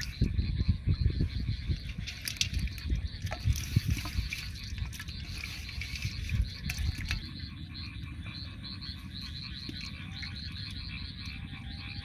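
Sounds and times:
frogs calling: 0:00.0 - 0:12.0
water splashing in a pan: 0:02.0 - 0:07.3.

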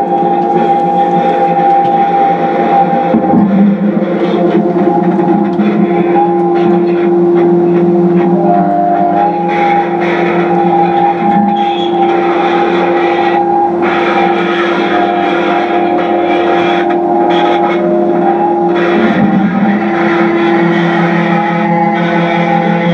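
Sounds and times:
guitar drone: 0:00.0 - 0:22.9
shifting high guitar tones: 0:00.0 - 0:22.9.

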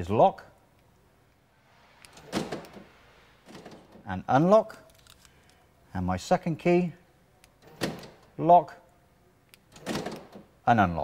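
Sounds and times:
car door locks clunking: 0:02.2 - 0:02.9, 0:09.6 - 0:10.5
faint lock clicks: 0:09.4 - 0:10.5.

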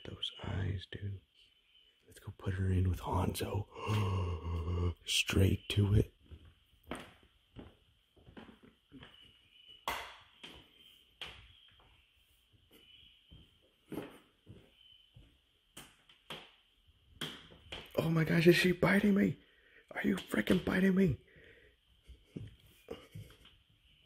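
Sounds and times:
faint steady high tone: 0:00.0 - 0:06.2.

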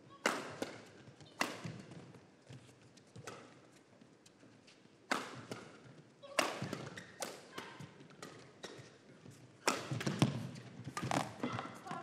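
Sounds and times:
racket hitting shuttlecock: 0:00.1 - 0:02.0, 0:03.2 - 0:03.7, 0:05.0 - 0:09.0, 0:09.6 - 0:12.0.

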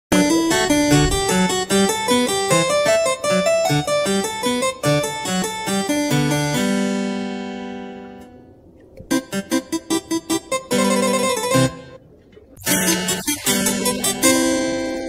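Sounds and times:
harpsichord playing: 0:00.1 - 0:08.4, 0:09.1 - 0:15.0.

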